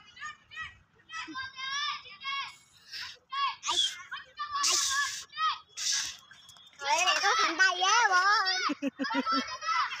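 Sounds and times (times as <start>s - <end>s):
child squealing: 3.6s - 6.2s.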